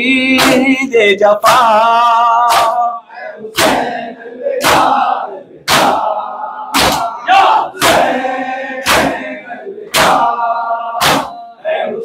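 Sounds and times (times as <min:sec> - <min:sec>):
crowd chanting: 0:00.2 - 0:12.0
hands slapping chests: 0:00.4 - 0:00.7, 0:02.4 - 0:04.0, 0:04.6 - 0:06.1, 0:06.7 - 0:07.2, 0:07.8 - 0:08.2, 0:08.8 - 0:09.3, 0:09.9 - 0:10.4, 0:11.0 - 0:11.4.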